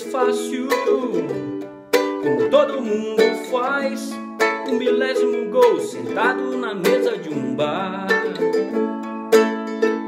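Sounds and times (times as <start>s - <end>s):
ukulele strummed: 0.0s - 10.0s.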